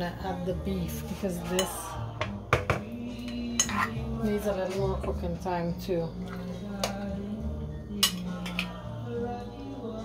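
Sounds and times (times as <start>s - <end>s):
soft background music: 0.0s - 10.0s
metal utensil clinking on pot: 3.3s - 4.0s, 8.0s - 8.8s.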